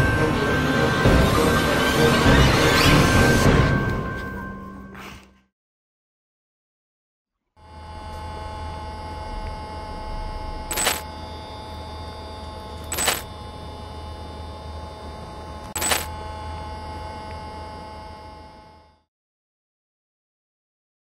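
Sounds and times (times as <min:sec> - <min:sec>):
electrical hum with level tones: 0:07.6 - 0:19.0.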